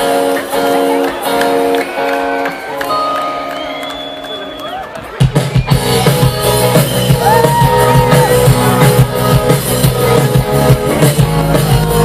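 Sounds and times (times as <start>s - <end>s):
bass guitar: 0.0s - 3.7s, 5.1s - 12.0s
electric guitar notes: 0.0s - 5.0s
drums: 0.0s - 12.0s.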